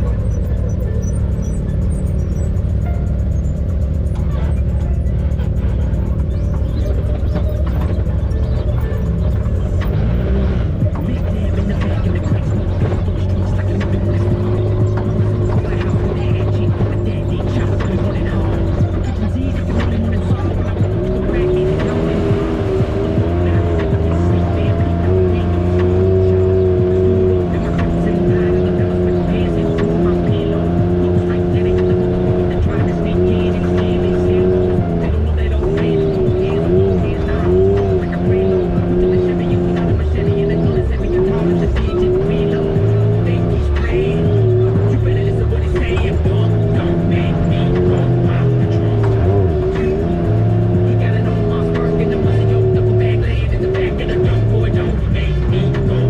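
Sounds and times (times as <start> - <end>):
background music: 0.0 - 56.0
vehicle engine revving: 0.0 - 56.0.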